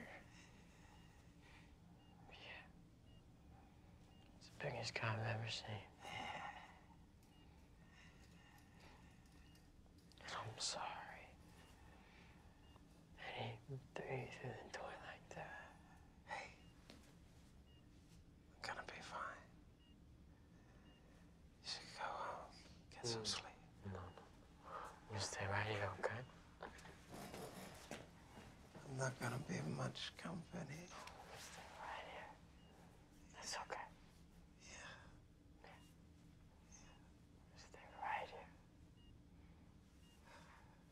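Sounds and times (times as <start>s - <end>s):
breathy whispered voice: 0.0s - 3.2s, 10.2s - 12.0s, 18.6s - 19.6s, 21.6s - 26.4s, 33.3s - 34.0s
person whispering: 10.2s - 11.4s, 13.2s - 16.6s, 18.6s - 19.5s, 21.6s - 26.3s, 33.3s - 33.9s, 37.6s - 38.5s.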